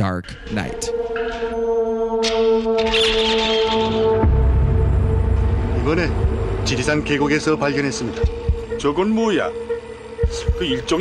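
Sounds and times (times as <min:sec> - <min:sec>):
horror music hum with wavering tones: 0:00.3 - 0:11.0.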